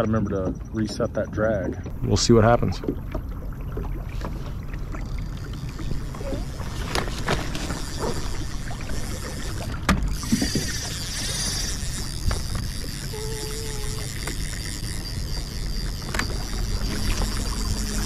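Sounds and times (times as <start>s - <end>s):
motor whine: 1.9s - 18.0s
water wash: 1.9s - 18.0s.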